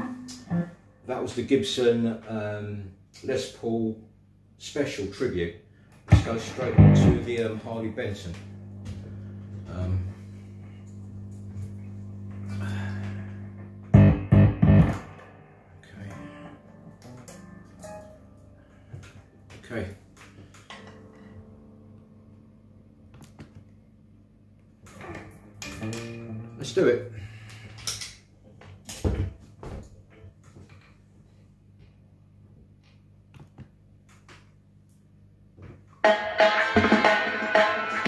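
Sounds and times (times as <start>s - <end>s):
guitar amplifier humming: 0.0s - 3.8s, 4.9s - 38.0s
thumps through amplifier: 6.1s - 7.5s, 13.9s - 15.4s.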